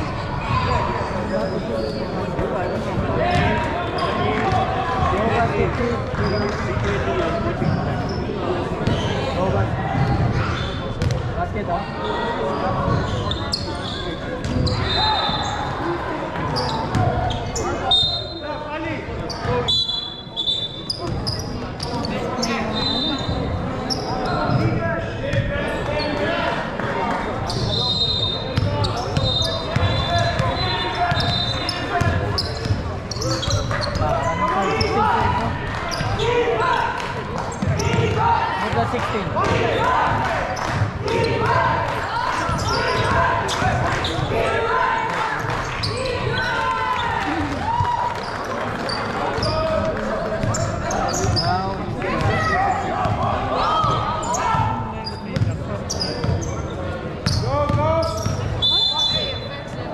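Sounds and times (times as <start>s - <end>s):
sneakers squeaking: 0.0s - 5.1s, 6.1s - 6.9s, 7.5s - 11.3s, 12.0s - 18.5s, 19.1s - 26.4s, 27.3s - 59.9s
voices of players and spectators: 0.0s - 59.9s
basketball bouncing on court: 11.0s - 11.3s, 28.6s - 31.4s, 55.3s - 55.6s, 57.2s - 58.5s.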